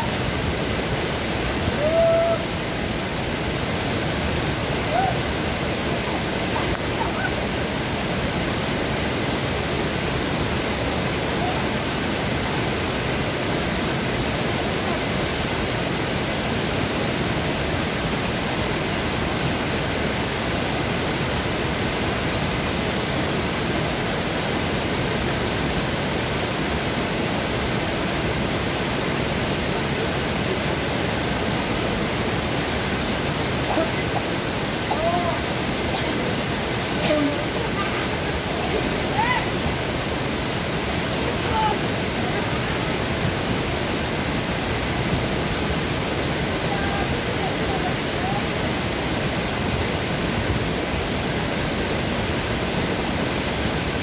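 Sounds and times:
waterfall rushing: 0.0 - 54.0.

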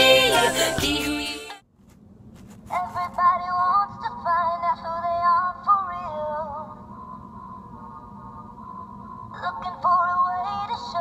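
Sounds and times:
tinny toy singing voice: 0.0 - 1.6, 9.3 - 11.0.

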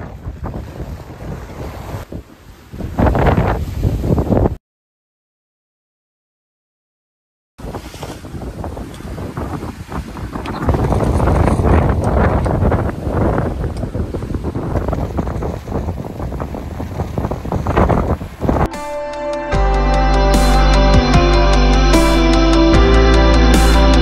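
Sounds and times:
sea water rushing along hull: 0.0 - 4.6, 7.6 - 18.7
wind buffeting microphone: 0.0 - 4.6, 7.6 - 18.7
music: 18.7 - 24.0.

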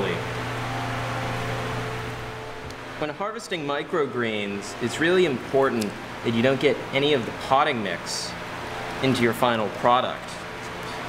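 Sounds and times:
ventilation fan humming: 0.0 - 11.0.

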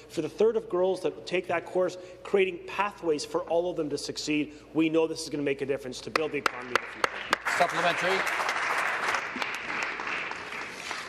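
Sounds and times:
hand clapping: 6.1 - 11.0.

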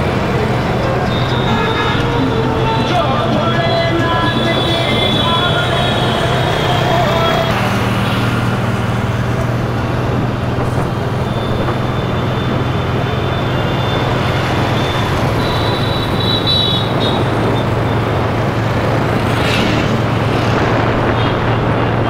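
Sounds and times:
road and traffic noise: 0.0 - 22.0.

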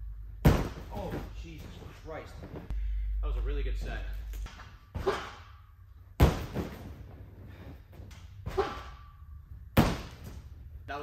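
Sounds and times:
sharp thuds on crash mat: 0.4 - 1.3, 6.2 - 7.0.

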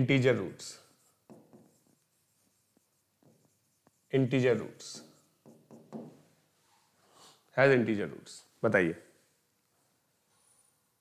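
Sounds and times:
pen scratching on a board: 0.9 - 6.2.

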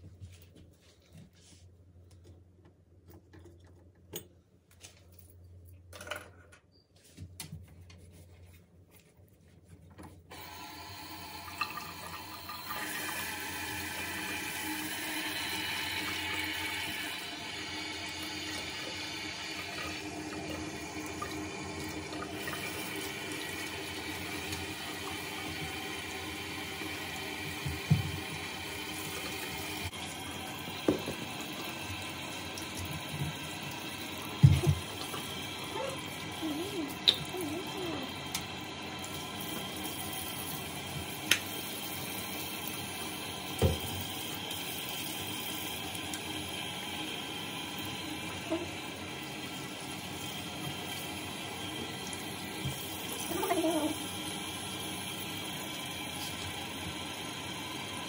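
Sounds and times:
tap water splashing in basin: 27.4 - 30.0, 30.7 - 35.4, 43.5 - 44.1.

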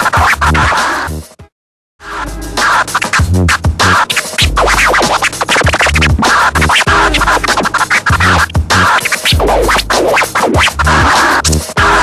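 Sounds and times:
dj scratching: 0.0 - 1.2, 2.2 - 12.0
looping beat with heavy bass: 0.0 - 1.2, 2.1 - 12.0.

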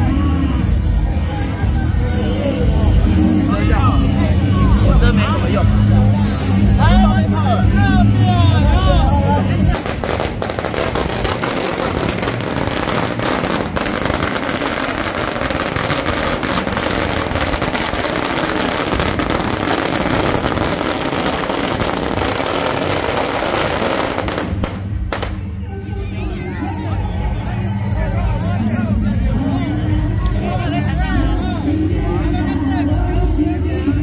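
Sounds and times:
processional band music: 9.3 - 34.0
firecrackers crackling: 9.6 - 25.6.

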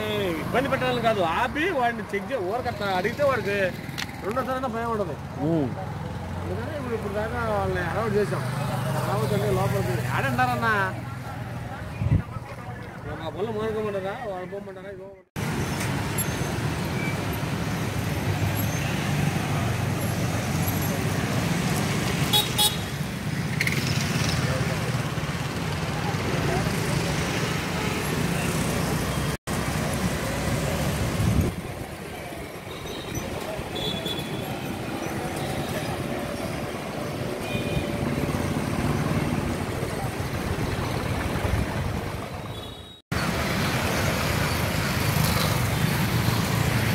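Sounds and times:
motorbikes passing: 0.0 - 14.8, 15.4 - 46.9
low traffic rumble: 0.0 - 46.9.

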